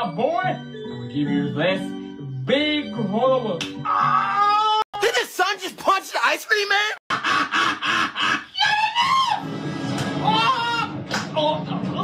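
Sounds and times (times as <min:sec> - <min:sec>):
cartoon soundtrack music: 0:00.0 - 0:04.8, 0:09.0 - 0:12.0.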